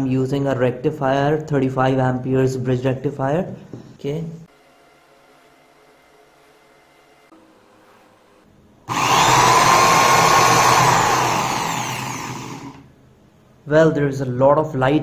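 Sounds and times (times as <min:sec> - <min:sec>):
electric drill running at high speed: 0:08.9 - 0:12.8.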